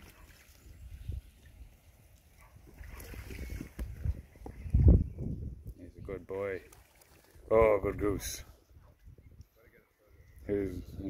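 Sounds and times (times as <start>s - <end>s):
wind rumble on microphone: 0.0s - 1.8s, 2.5s - 6.4s, 7.4s - 9.5s, 10.4s - 11.0s.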